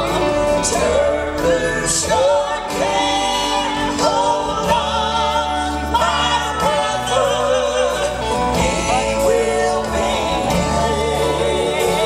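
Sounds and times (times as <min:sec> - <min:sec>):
gospel group singing in harmony: 0:00.0 - 0:12.0
piano and band accompaniment: 0:00.0 - 0:12.0.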